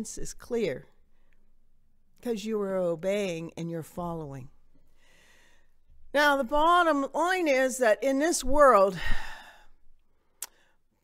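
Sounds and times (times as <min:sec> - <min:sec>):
woman breathing into microphone: 0:04.9 - 0:05.8.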